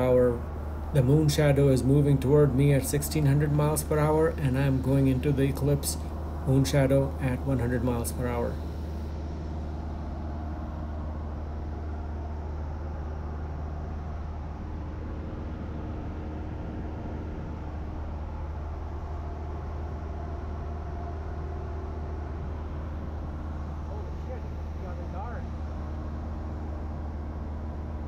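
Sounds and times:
propeller plane engine hum: 0:00.0 - 0:28.0.

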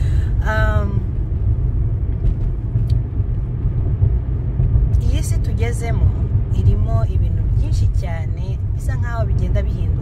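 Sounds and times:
car engine and tyre noise: 0:00.0 - 0:10.0.

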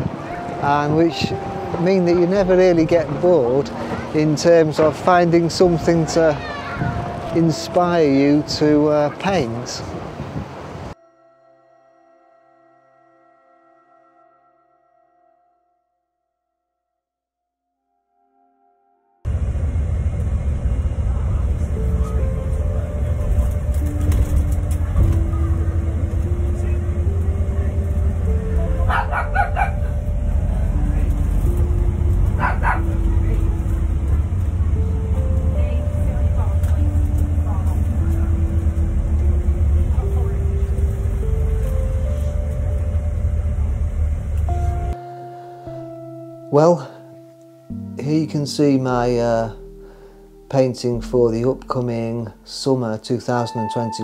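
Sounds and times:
bus engine and road rumble: 0:00.0 - 0:11.0, 0:19.3 - 0:45.0
background music of held notes: 0:00.0 - 0:14.8, 0:21.3 - 0:54.0.

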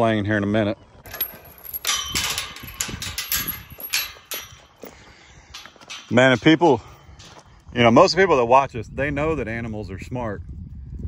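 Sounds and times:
metal gate clanking and rattling: 0:01.0 - 0:07.4.

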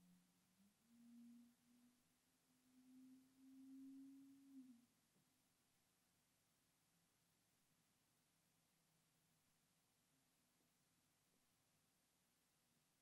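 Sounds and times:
faint rising low tones: 0:00.0 - 0:05.0.

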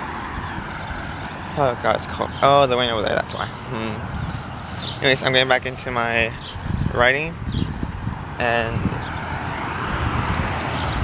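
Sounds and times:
car tyre and road noise: 0:00.0 - 0:11.0
wind on microphone: 0:03.7 - 0:11.0.

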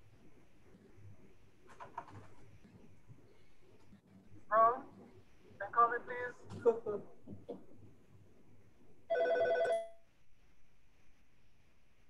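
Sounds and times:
telephone ringing: 0:09.1 - 0:10.0.

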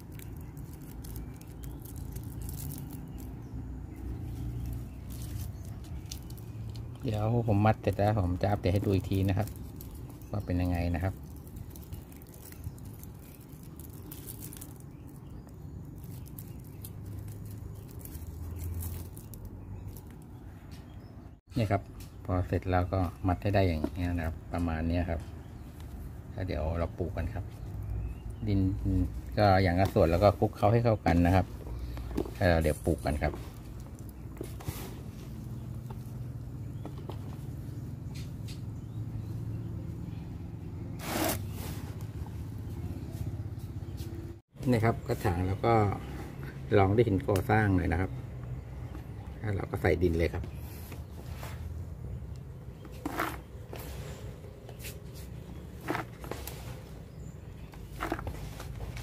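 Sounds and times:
hands stirring potting mix: 0:00.0 - 0:21.0, 0:22.0 - 0:38.4, 0:49.1 - 0:59.0
rustling and crinkling of leaves: 0:00.0 - 0:59.0
rustling scrape: 0:33.2 - 0:35.6, 0:40.9 - 0:43.1, 0:50.6 - 0:51.8, 0:52.9 - 0:57.1, 0:57.7 - 0:59.0.

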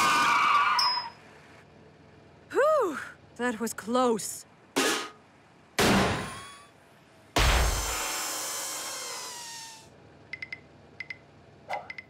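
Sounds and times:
cartoon metallic crash: 0:05.8 - 0:06.7, 0:07.4 - 0:09.8.

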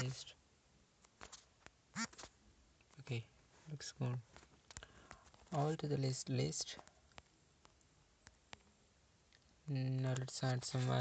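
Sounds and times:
wordless hm voice sound: 0:00.0 - 0:00.4, 0:09.7 - 0:11.0.

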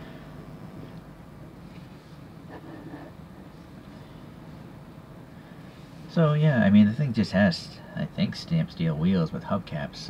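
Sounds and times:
turntable motor hum: 0:00.0 - 0:05.1.

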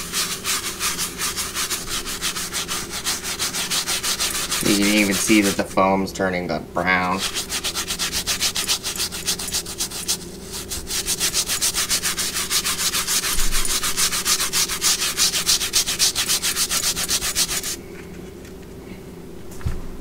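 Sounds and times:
brush scrubbing wet fabric: 0:00.0 - 0:05.7, 0:07.0 - 0:17.8
steady low hum: 0:00.0 - 0:20.0.

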